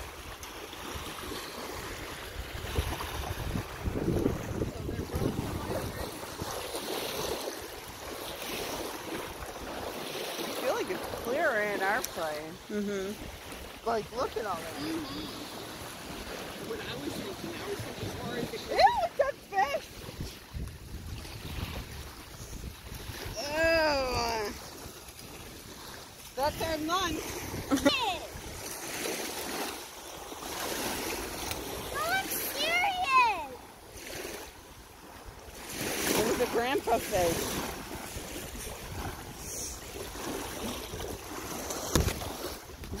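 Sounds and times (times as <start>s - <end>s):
lake waves washing on shore: 0.0s - 43.0s
wind buffeting microphone: 1.1s - 9.9s, 13.6s - 24.9s, 35.3s - 43.0s
thump: 41.9s - 42.2s.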